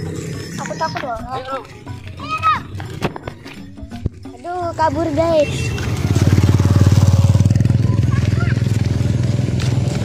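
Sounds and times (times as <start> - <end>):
background music: 0.0 - 7.5.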